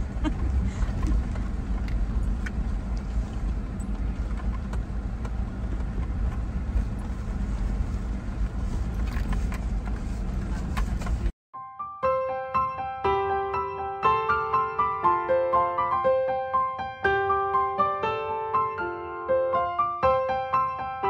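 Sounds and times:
motor vehicle rumble: 0.0s - 11.4s.

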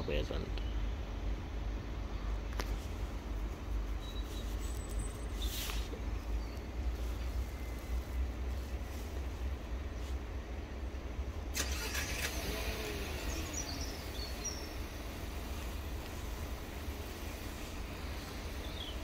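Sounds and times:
road vehicle rumble: 0.0s - 19.0s
hiss: 11.6s - 19.0s.

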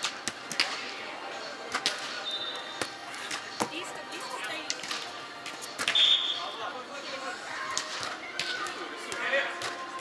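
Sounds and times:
murmur of voices: 0.0s - 10.0s
volleyball hand slaps: 7.7s - 10.0s.

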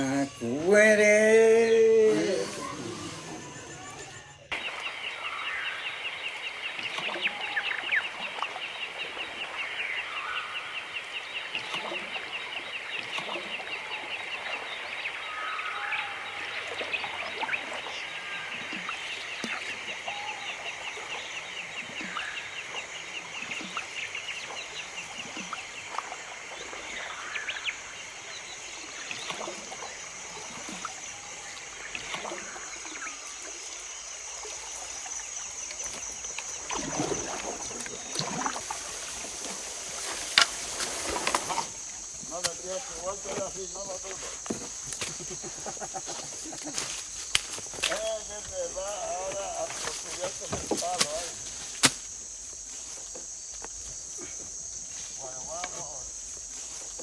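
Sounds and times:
pulsing chorus of calling animals: 0.0s - 8.4s.

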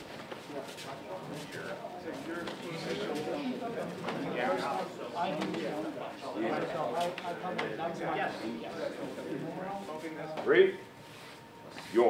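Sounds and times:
people talking at once: 0.5s - 10.8s.

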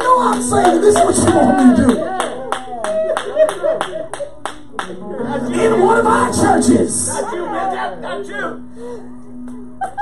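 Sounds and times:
hands clapping steady beat: 0.0s - 5.0s.

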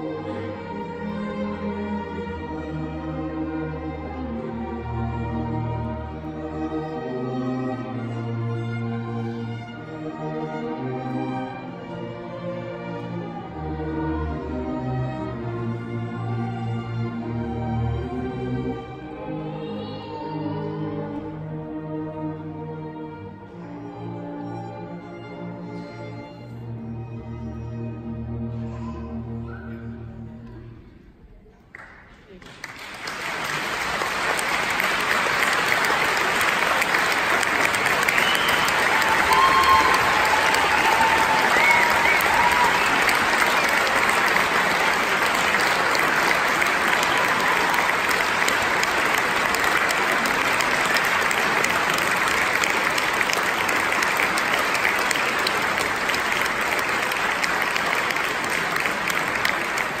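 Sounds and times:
audience applause: 31.8s - 60.0s.

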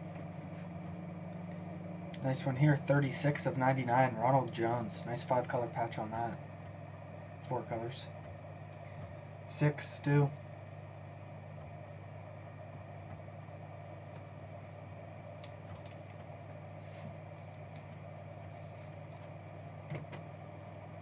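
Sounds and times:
low room hum: 0.0s - 21.0s.

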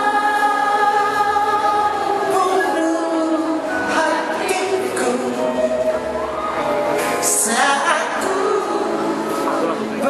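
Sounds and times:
band backing music: 0.0s - 10.0s.

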